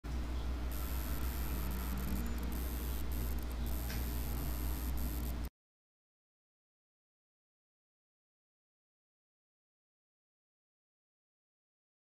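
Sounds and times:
low electrical hum: 0.1s - 5.5s
microphone hiss: 0.6s - 5.5s.

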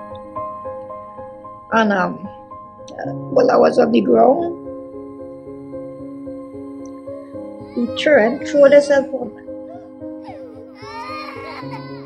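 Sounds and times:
soft sustained background music: 0.0s - 12.0s
woman's high wavering voice: 7.7s - 9.4s.

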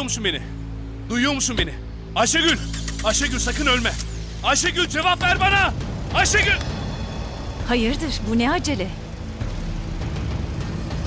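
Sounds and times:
car engine low rumble: 0.0s - 11.0s
soft background music: 0.0s - 11.0s.

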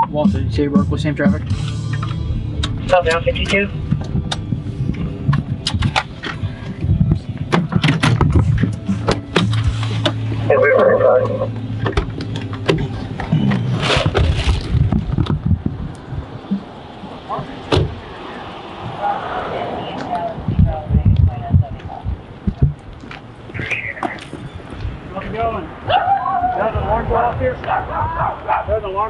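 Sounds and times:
clicks and knocks in car interior: 7.4s - 10.2s
indistinct voices: 10.0s - 14.1s, 16.4s - 24.5s.

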